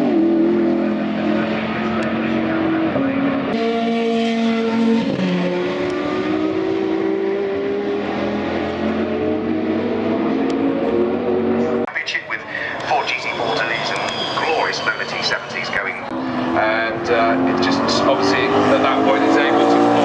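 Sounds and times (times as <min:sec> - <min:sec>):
supercar engines revving: 0:00.0 - 0:20.0.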